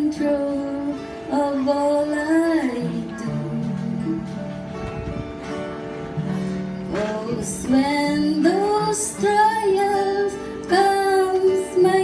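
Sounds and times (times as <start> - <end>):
soft instrumental accompaniment: 0.0 - 12.0
woman singing gospel song: 6.9 - 12.0.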